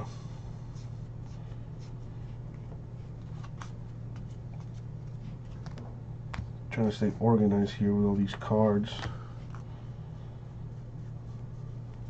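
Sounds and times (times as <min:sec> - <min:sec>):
steady low hum: 0:00.0 - 0:12.0
cards flipped by hand: 0:03.2 - 0:04.8.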